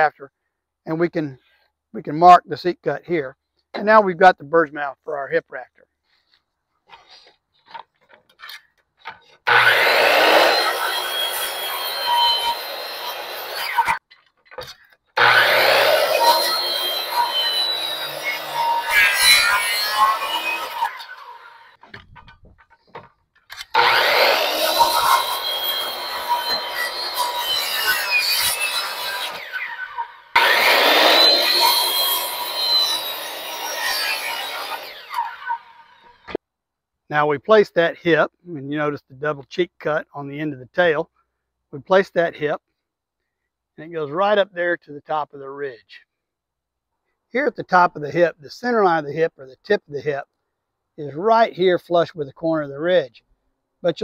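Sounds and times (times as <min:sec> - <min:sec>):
circular saw cutting wood: 0:09.4 - 0:14.0, 0:15.2 - 0:21.9, 0:23.5 - 0:36.4
saw motor whining: 0:09.4 - 0:14.0, 0:15.2 - 0:21.9, 0:23.5 - 0:36.4.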